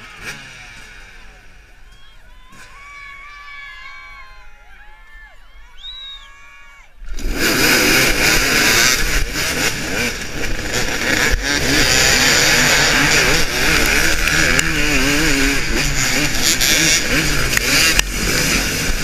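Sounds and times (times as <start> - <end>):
two-stroke engine revving: 0.0 - 1.8, 7.1 - 19.0
dirt bikes at full throttle: 0.0 - 19.0.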